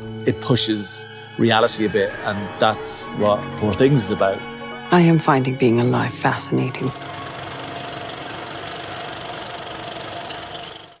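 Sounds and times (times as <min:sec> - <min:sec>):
film projector whirring and clattering: 0:07.0 - 0:11.0.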